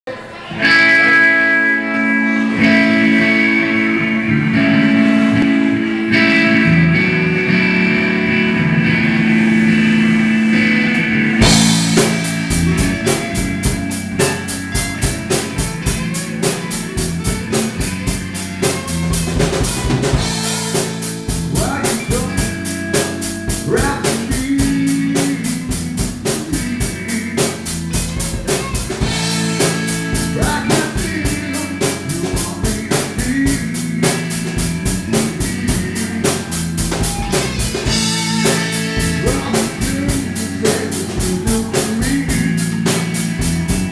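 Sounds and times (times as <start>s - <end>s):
bass guitar: 0.1s - 43.9s
electric guitars: 0.1s - 43.9s
drum kit steady beat: 11.0s - 43.9s.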